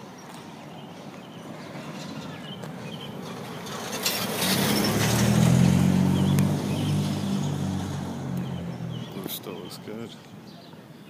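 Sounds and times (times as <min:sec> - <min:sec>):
car driving past: 0:01.6 - 0:09.5.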